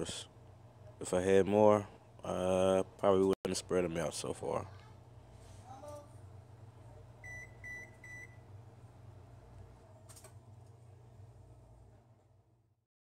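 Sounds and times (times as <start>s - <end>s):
low steady hum: 0.0s - 12.8s.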